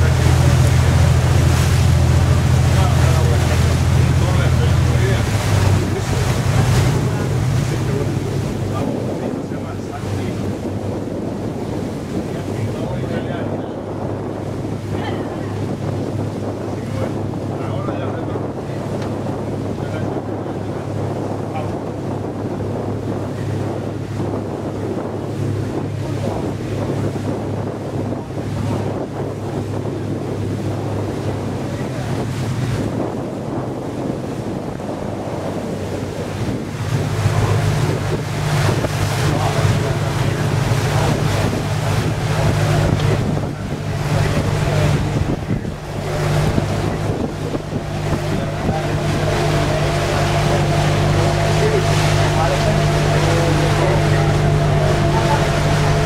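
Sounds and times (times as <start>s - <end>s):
boat engine droning: 0.0s - 56.0s
water rushing past hull: 0.0s - 56.0s
wind buffeting microphone: 0.0s - 56.0s.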